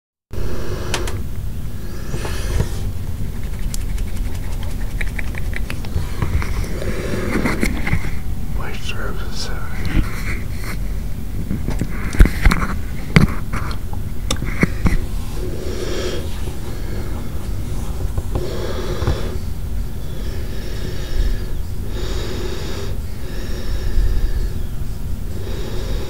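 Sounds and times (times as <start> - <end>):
steady low rumble: 0.3 - 26.0.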